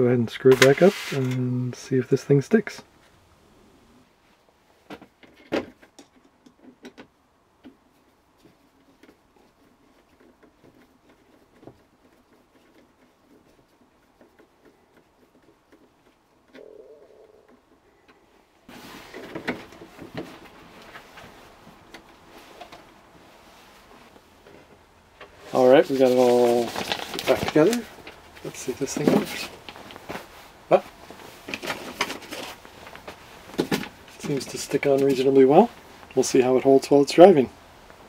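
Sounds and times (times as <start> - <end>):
plastic rubbing and scraping: 7.6 - 36.3.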